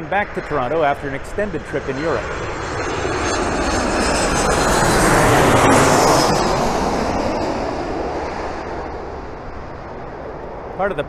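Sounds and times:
high jet engine whine: 0.0s - 11.0s
jet airliner flying overhead: 0.0s - 11.0s.

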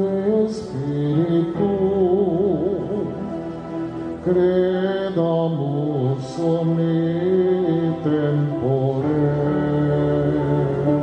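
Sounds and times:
slow hymn being sung: 0.0s - 11.0s.

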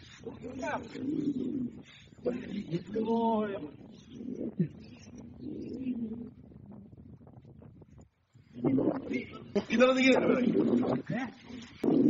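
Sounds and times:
low indistinct voices: 8.4s - 12.0s.

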